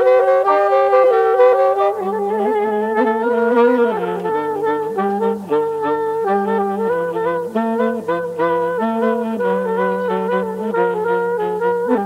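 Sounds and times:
saxophones in close harmony: 0.0 - 12.0.

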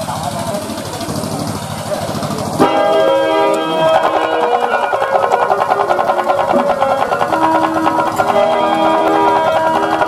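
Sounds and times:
rough noisy stage sound: 0.0 - 10.0
harmonium chord: 2.6 - 10.0.

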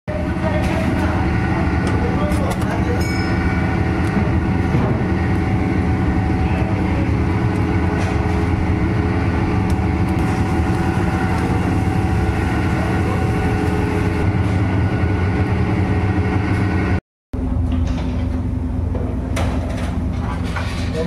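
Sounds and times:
motor or fan droning: 0.1 - 21.0.

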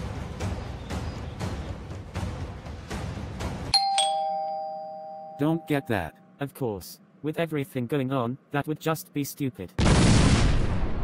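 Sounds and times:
two-tone doorbell chime: 3.7 - 6.1.

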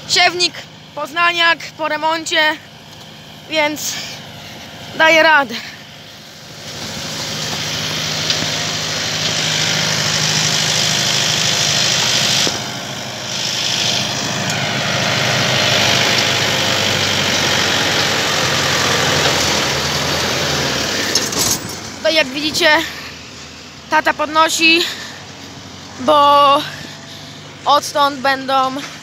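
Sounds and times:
tractor engine running under load: 0.0 - 29.0.

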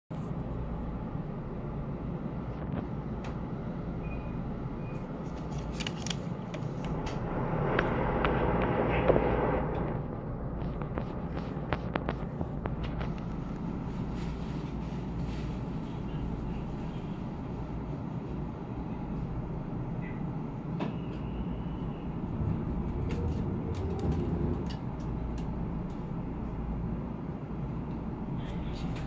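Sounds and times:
low hum inside train coach: 0.1 - 29.0
rushing noise: 6.6 - 14.7, 21.6 - 25.2.

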